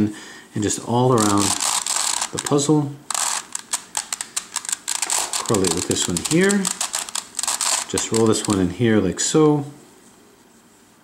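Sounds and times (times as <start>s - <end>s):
puzzle cube clicking as turned: 1.2s - 8.7s.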